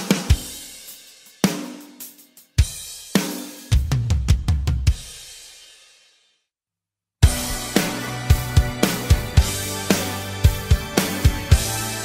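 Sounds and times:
heavy drum hits: 0:07.2 - 0:11.7.

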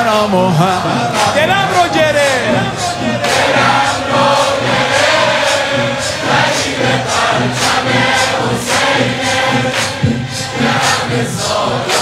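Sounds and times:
congregation singing refrain: 0:00.0 - 0:12.0.

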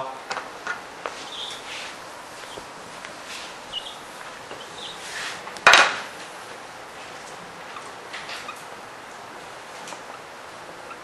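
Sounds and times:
marker strokes on whiteboard: 0:01.1 - 0:05.5
eraser rubbing on whiteboard: 0:04.6 - 0:05.4.

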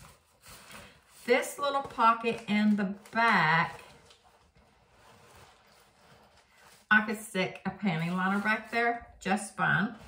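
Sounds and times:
woman speaking: 0:01.2 - 0:04.0, 0:06.9 - 0:10.0.

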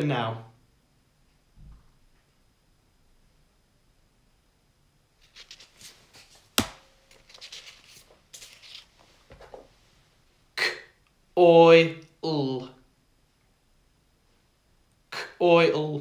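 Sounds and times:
paper cards rustling: 0:05.2 - 0:09.6.

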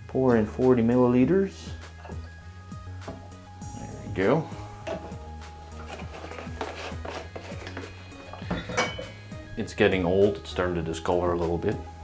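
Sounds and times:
soft background music: 0:00.0 - 0:12.0
bottle and glass clinking: 0:08.3 - 0:09.2.

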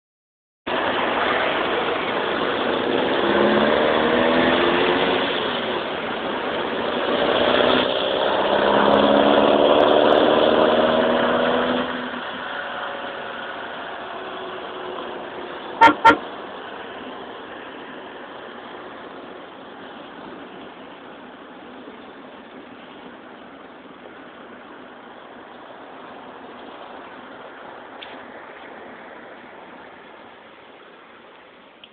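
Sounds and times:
road noise: 0:00.7 - 0:31.9
car engine accelerating: 0:07.2 - 0:14.7
car horn toots: 0:15.8 - 0:16.2.

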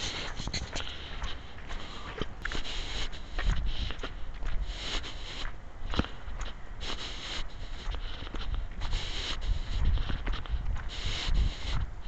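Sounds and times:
wind rumble on microphone: 0:00.0 - 0:05.0, 0:07.4 - 0:12.0
footsteps crunching in snow: 0:00.0 - 0:12.0.

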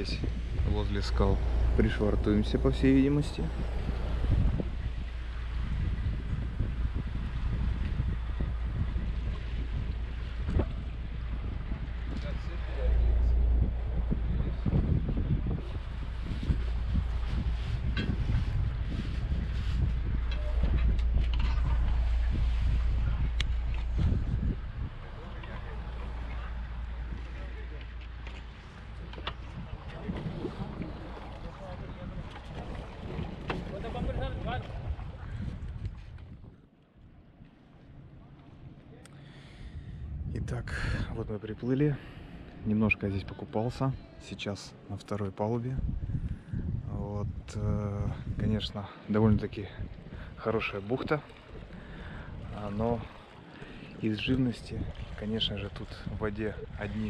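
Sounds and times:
water noise: 0:00.0 - 0:57.0
wind rumbling on microphone: 0:00.0 - 0:57.0.

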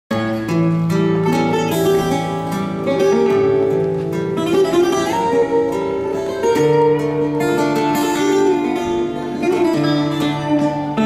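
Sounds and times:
acoustic guitar strummed chords: 0:00.1 - 0:11.0
bright plucked guitar melody: 0:00.1 - 0:11.0.

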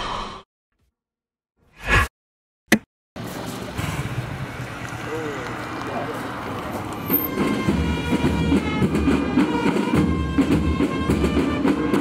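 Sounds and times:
traffic noise: 0:03.2 - 0:12.0.

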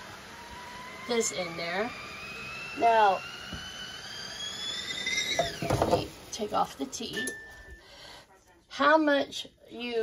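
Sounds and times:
kettle whistling: 0:00.0 - 0:08.0.

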